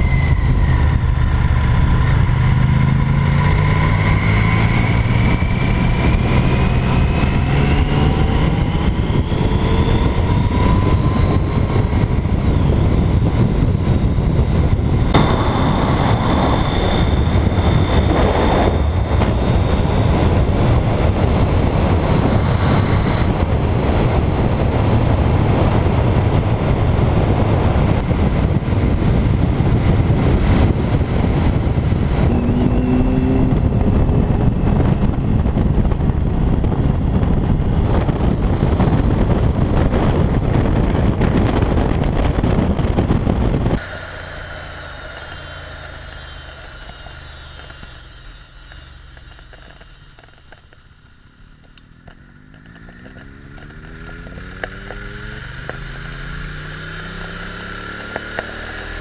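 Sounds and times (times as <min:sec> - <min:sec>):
motorcycle engine: 0:00.0 - 0:59.0
road noise: 0:00.0 - 0:59.0
wind rushing over microphone: 0:00.0 - 0:59.0.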